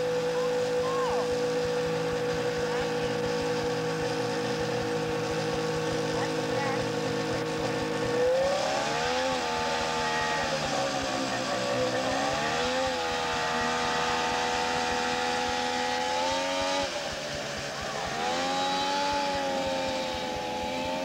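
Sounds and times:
snowmobile engine revving: 0.0 - 21.0.

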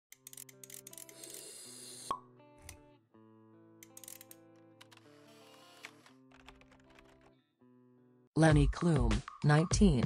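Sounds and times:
soft background music: 0.1 - 10.0.

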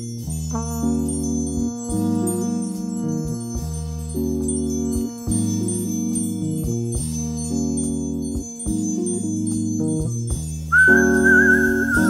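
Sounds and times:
bass line: 0.0 - 12.0
electric piano jazz chords: 0.0 - 12.0
high held melody note with vibrato: 10.7 - 12.0.

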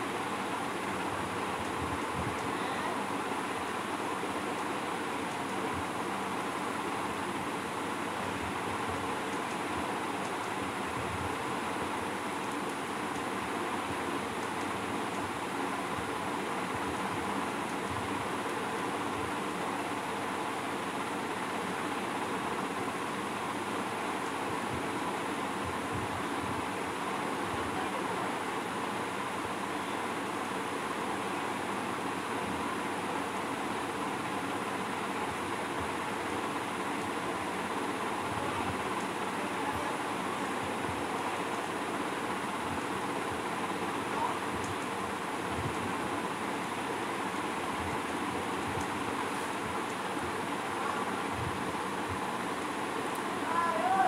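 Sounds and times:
steady hiss and rumble: 0.0 - 54.0.

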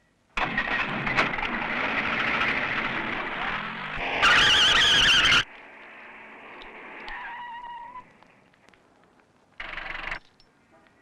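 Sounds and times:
tyres squealing: 4.0 - 5.5, 7.0 - 8.4.

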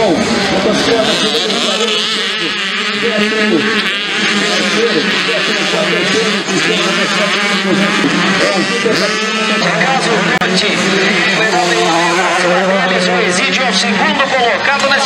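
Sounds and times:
dirt bike engines racing: 0.0 - 15.0.

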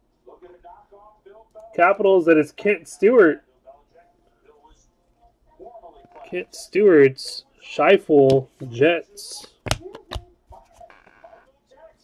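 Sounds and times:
man speaking softly: 0.3 - 9.6.

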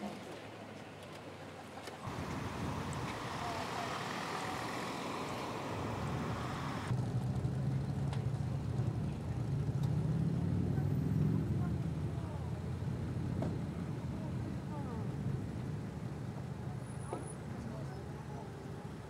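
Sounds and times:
road traffic noise: 0.1 - 19.0
faint voices: 1.4 - 6.9
deep traffic rumble: 2.0 - 19.0.

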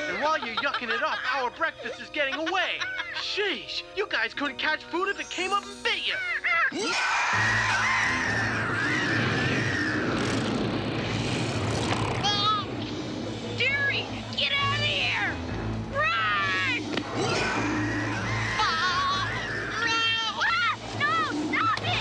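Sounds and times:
dramatic cartoon action music: 2.2 - 22.0
cartoon creature bleating cries: 6.0 - 10.3, 16.0 - 20.4.

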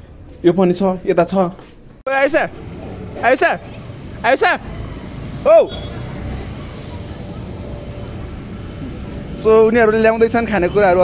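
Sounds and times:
street traffic noise: 0.0 - 11.0
motorcycles riding past: 2.4 - 11.0.

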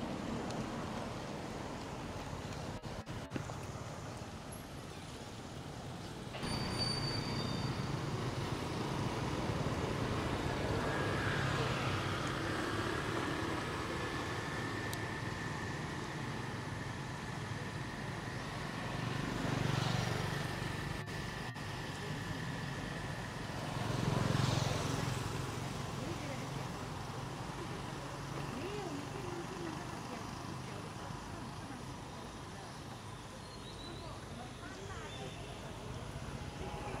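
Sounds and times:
road traffic rumble: 0.0 - 37.0
vehicles passing: 0.0 - 37.0.

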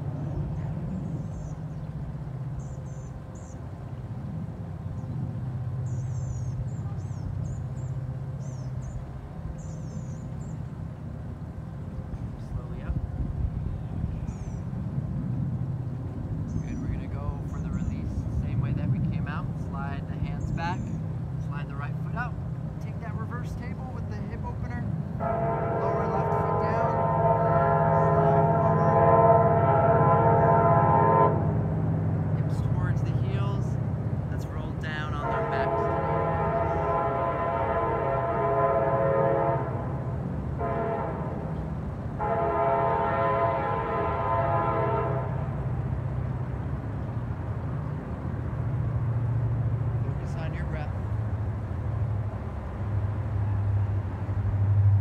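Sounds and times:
low steady rumble: 0.0 - 55.0
loud multi-note horn blasts: 25.2 - 31.6, 34.8 - 41.5, 42.2 - 45.6.

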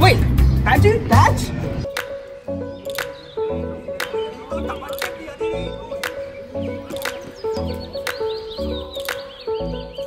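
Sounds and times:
background music with a beat: 0.0 - 10.0.

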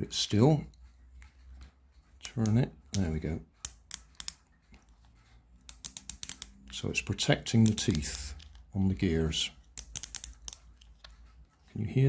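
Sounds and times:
toy clutch plastic clicks: 5.6 - 6.8, 7.5 - 8.6, 9.7 - 11.4.

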